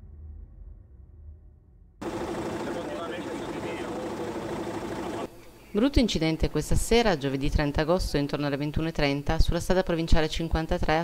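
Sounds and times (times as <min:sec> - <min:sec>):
car engine idling: 0:02.0 - 0:05.3
people talking: 0:02.4 - 0:11.0.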